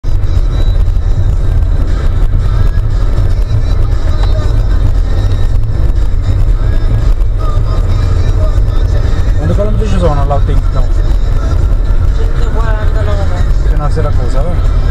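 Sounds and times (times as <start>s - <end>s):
car engine and tyres rumbling: 0.0s - 14.9s.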